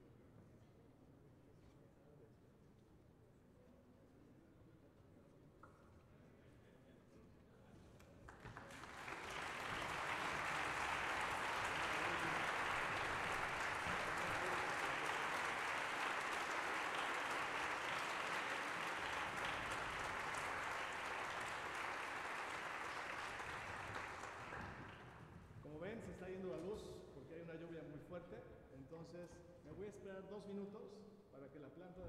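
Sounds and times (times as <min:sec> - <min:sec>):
audience applauding: 0:08.3 - 0:25.3.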